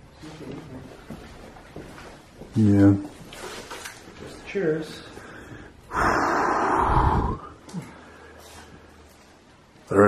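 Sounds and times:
long breathy exhale: 5.9s - 8.3s.

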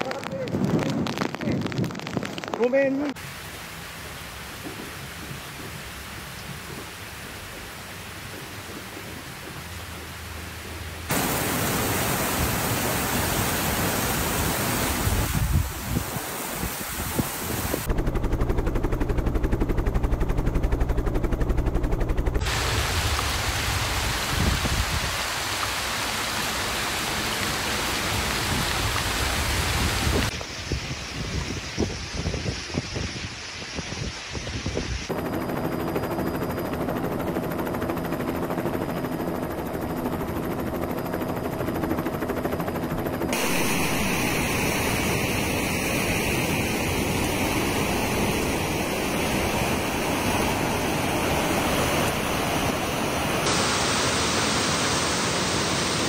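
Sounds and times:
wind noise: 0.0s - 3.3s, 4.5s - 18.0s, 22.4s - 25.7s, 27.3s - 35.1s
heavy rain: 11.0s - 17.9s, 22.4s - 31.0s, 43.4s - 45.5s, 49.4s - 56.0s.

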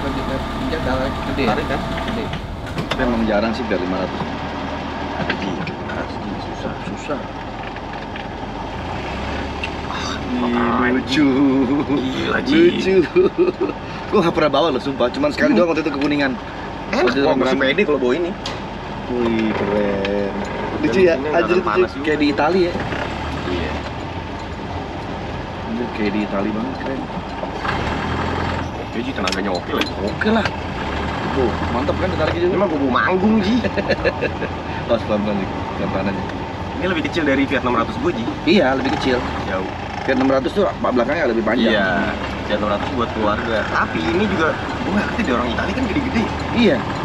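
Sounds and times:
small car engine running: 0.0s - 18.4s, 19.1s - 47.0s.

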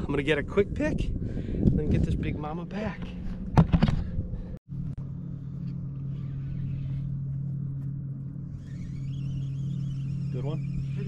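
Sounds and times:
boat motor humming: 3.4s - 11.0s.

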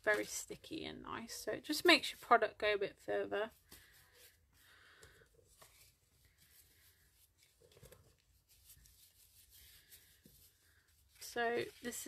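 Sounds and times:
paintbrush swishing on paper: 5.5s - 12.0s.

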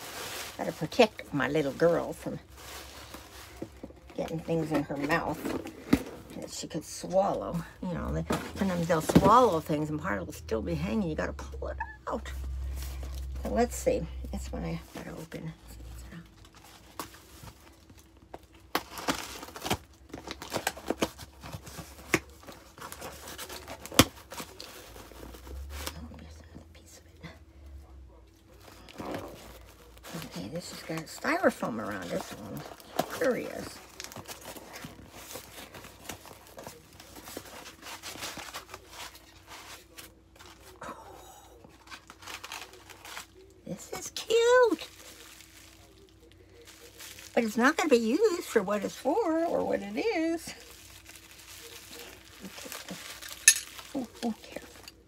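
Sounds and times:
packaging crinkling and tearing: 15.8s - 26.2s, 28.4s - 40.8s, 41.6s - 55.0s.

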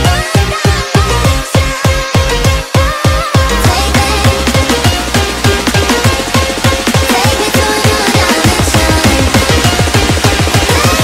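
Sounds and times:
deep bass pulses: 0.0s - 11.0s
high synth melody: 3.5s - 11.0s.

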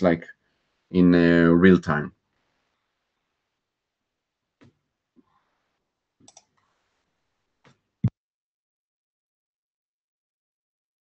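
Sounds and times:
computer mouse clicks: 6.2s - 6.6s.

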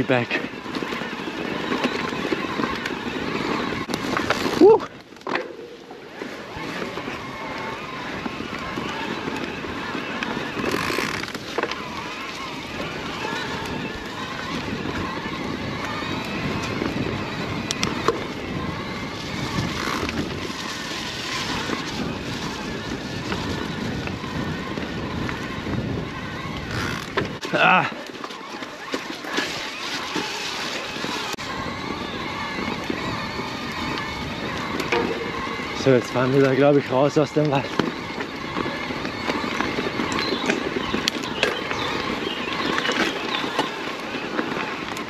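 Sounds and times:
tyres rumbling over dirt trail: 0.0s - 45.0s
bike clicks and knocks: 0.1s - 45.0s.

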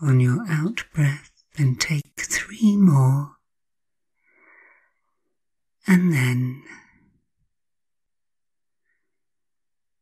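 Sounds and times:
faint in-breath: 4.2s - 5.2s.

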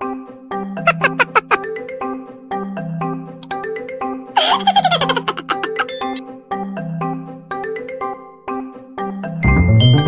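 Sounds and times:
marimba background music: 0.7s - 10.0s
baby giggling: 0.9s - 1.6s, 4.4s - 6.0s.

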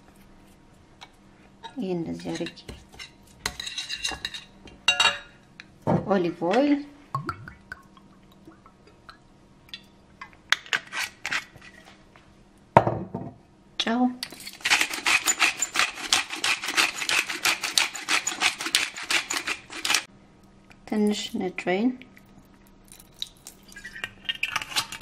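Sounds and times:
metal spoon stirring in glass bowl: 14.2s - 20.1s.

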